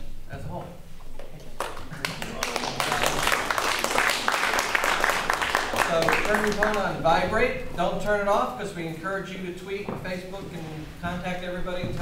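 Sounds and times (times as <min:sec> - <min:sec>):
audience applause: 0:01.6 - 0:07.0.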